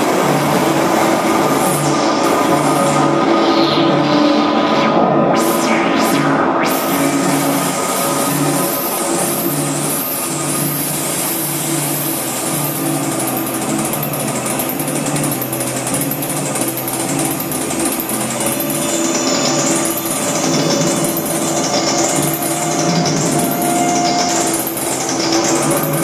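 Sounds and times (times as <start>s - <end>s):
whooshing filter sweep: 1.6s - 9.4s
pulsing low note: 18.4s - 26.0s
live band drone music: 18.6s - 26.0s.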